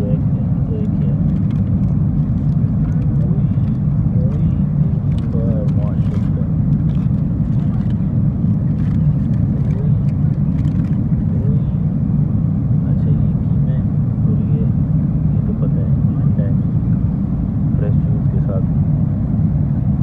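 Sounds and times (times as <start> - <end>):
faint passenger voices: 0.0 - 19.3
airliner engines roaring: 0.0 - 20.0.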